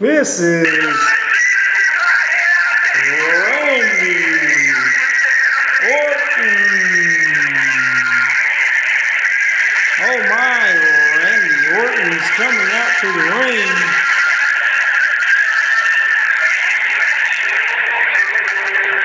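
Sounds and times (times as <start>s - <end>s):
man's drawn-out vocal calls: 3.0s - 5.2s, 5.8s - 8.5s, 10.0s - 14.0s.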